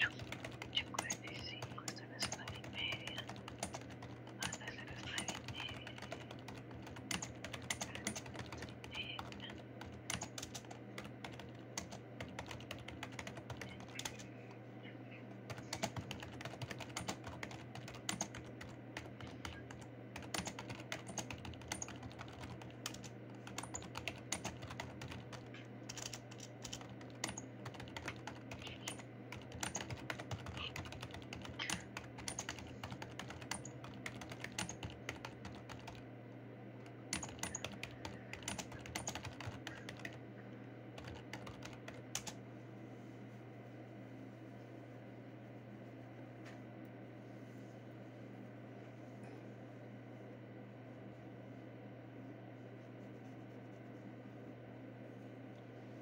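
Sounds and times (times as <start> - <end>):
computer keyboard typing: 0.0 - 14.3, 15.5 - 36.0, 36.8 - 40.2, 41.0 - 42.4
low steady hum: 0.0 - 56.0.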